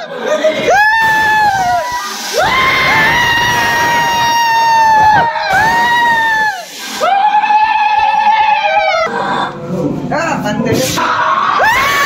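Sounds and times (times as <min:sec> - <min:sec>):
people screaming in fright: 0:00.0 - 0:09.4, 0:11.0 - 0:12.0.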